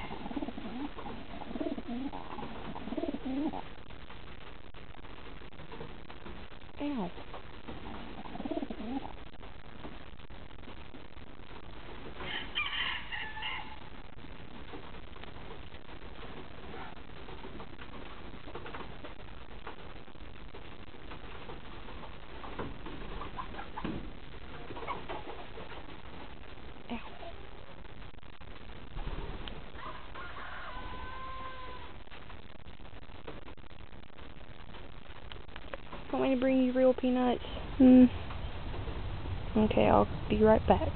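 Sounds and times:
pigeon cooing: 0:00.0 - 0:03.7, 0:07.8 - 0:09.2.

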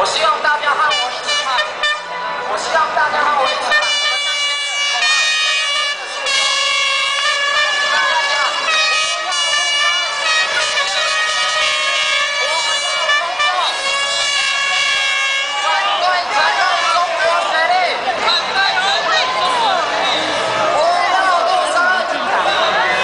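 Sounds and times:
air horns blaring: 0:00.8 - 0:02.5, 0:03.2 - 0:20.6
people shouting: 0:03.4 - 0:23.0.

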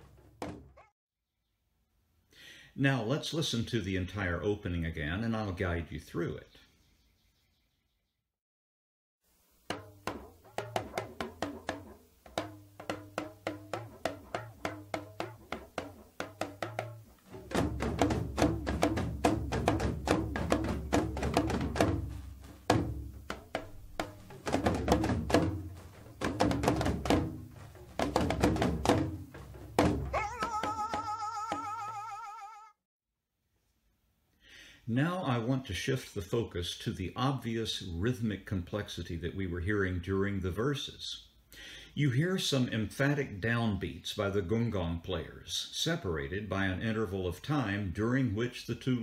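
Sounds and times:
talking drum rapid strokes: 0:09.7 - 0:32.0
deep booming drums: 0:12.4 - 0:30.9
person singing wavering pitch: 0:30.2 - 0:32.7.

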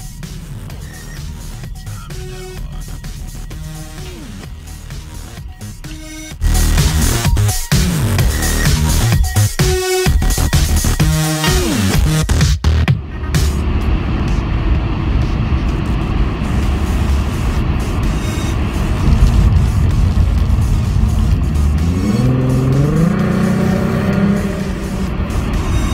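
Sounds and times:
car engine accelerating: 0:00.0 - 0:11.0, 0:13.0 - 0:25.9
road noise inside car: 0:13.0 - 0:25.9.

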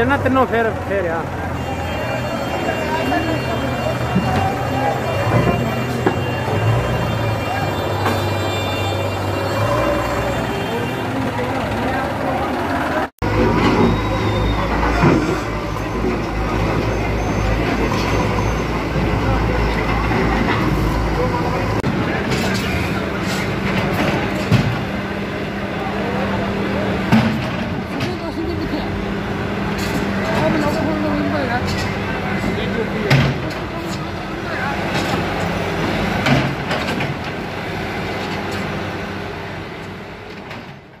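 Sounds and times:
crowd chatter: 0:00.0 - 0:36.8
diesel engines running: 0:00.0 - 0:41.0.

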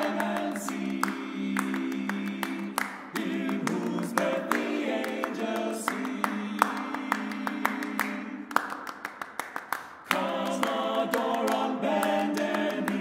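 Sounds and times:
male a cappella singing: 0:00.0 - 0:08.5, 0:10.1 - 0:13.0
hand clapping: 0:00.0 - 0:13.0.

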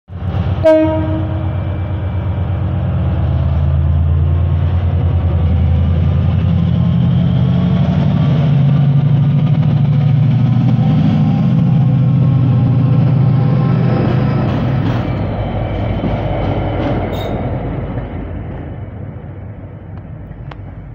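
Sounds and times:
diesel locomotive passing: 0:00.1 - 0:20.9.

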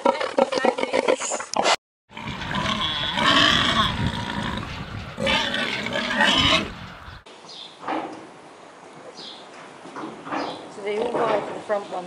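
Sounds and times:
pigs calling loudly: 0:00.0 - 0:07.2.

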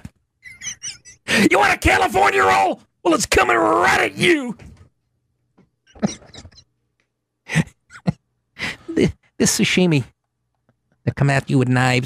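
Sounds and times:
man's voice: 0:01.3 - 0:04.6.

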